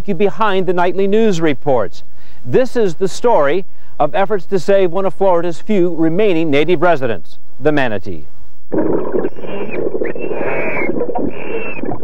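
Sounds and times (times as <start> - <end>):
dense rough underwater noise: 8.7 - 12.0
high drawn-out tones: 8.7 - 12.0.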